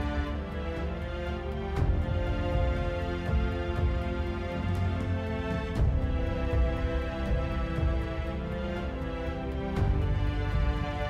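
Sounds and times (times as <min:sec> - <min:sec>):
background music with pulsing beat: 0:00.0 - 0:11.0.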